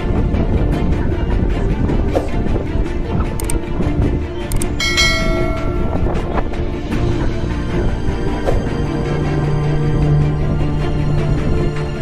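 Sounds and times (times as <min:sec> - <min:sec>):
background music: 0:00.0 - 0:12.0
bright bell chime: 0:04.8 - 0:06.6.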